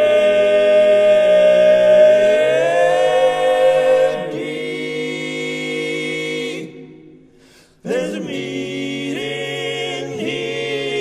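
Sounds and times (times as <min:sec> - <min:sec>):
quartet singing a cappella: 0:00.0 - 0:07.2, 0:07.8 - 0:11.0.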